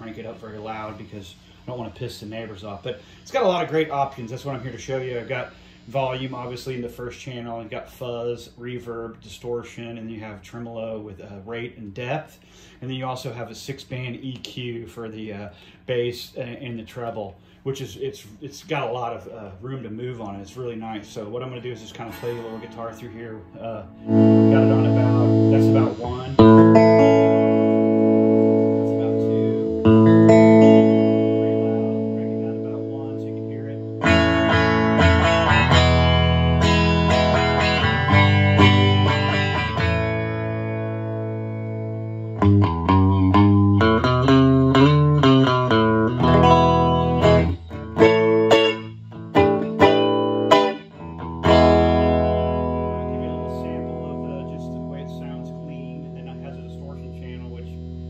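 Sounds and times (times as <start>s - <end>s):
electric guitar chords and runs: 21.8s - 58.0s.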